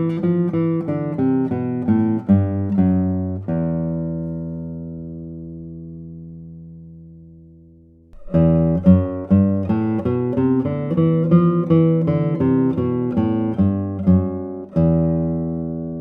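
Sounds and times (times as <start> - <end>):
classical guitar fingerstyle: 0.0 - 16.0.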